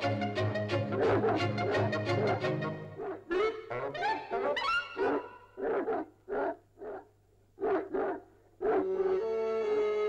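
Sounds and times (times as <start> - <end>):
dog barking: 1.0 - 2.3, 4.4 - 8.9.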